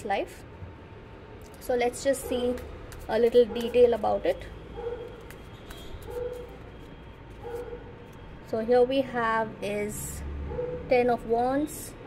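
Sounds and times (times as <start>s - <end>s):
cards handled on cloth: 2.4s - 4.1s, 5.0s - 7.8s.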